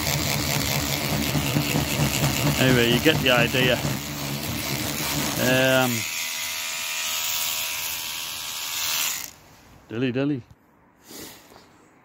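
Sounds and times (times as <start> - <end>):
small motor whine: 0.0 - 9.4.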